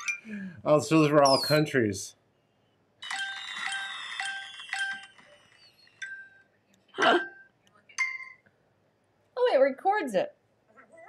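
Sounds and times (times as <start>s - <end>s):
electronic chime jingle: 3.0s - 6.4s.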